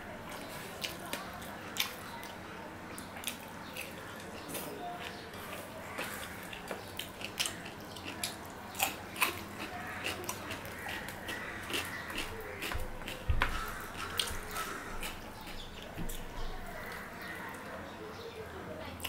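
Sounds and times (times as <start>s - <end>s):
chewing: 0.3s - 17.8s
fingers squishing rice and curry: 0.3s - 17.8s.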